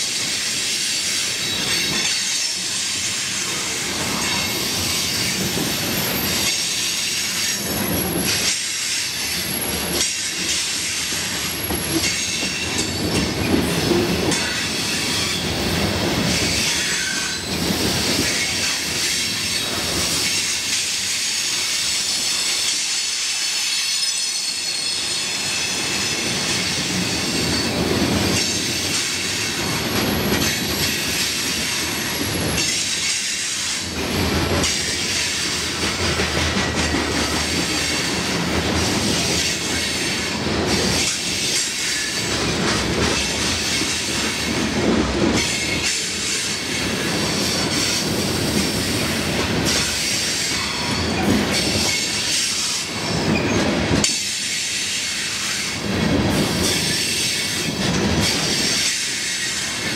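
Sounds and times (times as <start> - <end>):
freight train rolling past: 0.0 - 59.9.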